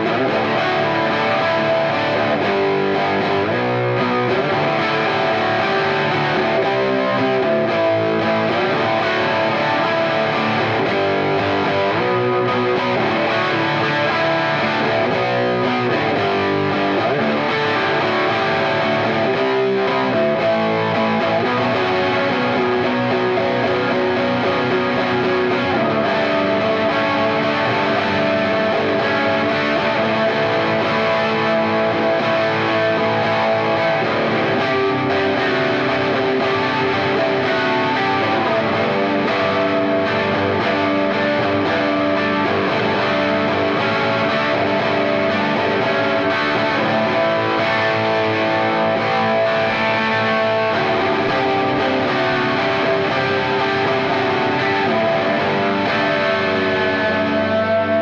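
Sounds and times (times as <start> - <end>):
overdriven electric guitar: 0.0 - 58.0.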